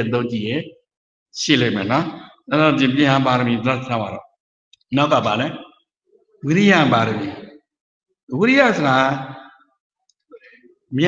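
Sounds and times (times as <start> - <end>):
man speaking: 0.0 - 0.8, 1.4 - 4.3, 4.9 - 5.8, 6.4 - 7.6, 8.3 - 9.5, 10.4 - 11.0.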